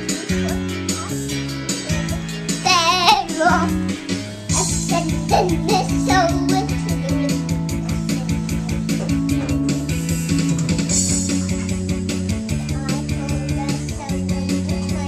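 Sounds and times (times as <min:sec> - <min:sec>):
karaoke backing track: 0:00.0 - 0:15.0
toddler singing: 0:02.6 - 0:03.8, 0:04.5 - 0:07.4, 0:12.7 - 0:15.0.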